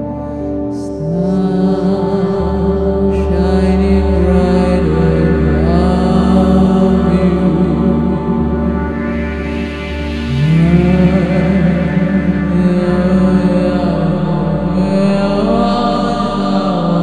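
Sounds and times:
electronic drone: 0.0s - 17.0s
voice holding long notes: 0.0s - 17.0s.

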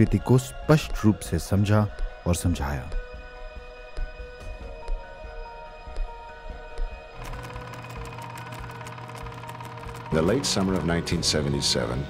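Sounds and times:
film projector clatter: 7.2s - 12.0s.

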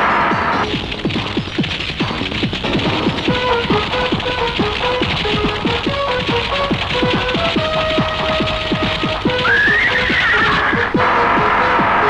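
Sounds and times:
action music with driving drumbeat: 0.0s - 12.0s
horse whinnying: 9.3s - 11.0s.

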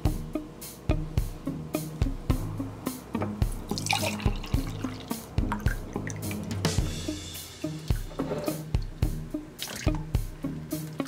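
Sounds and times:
background music with drum beat: 0.0s - 11.0s.

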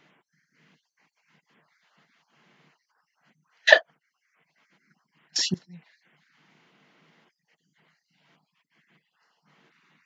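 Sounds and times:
person hiccup-like vocal burst: 5.4s - 5.8s.

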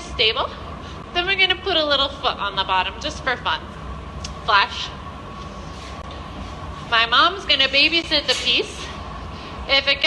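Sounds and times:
gas furnace burning rumble: 0.0s - 10.0s
thin steady whine: 0.0s - 10.0s.

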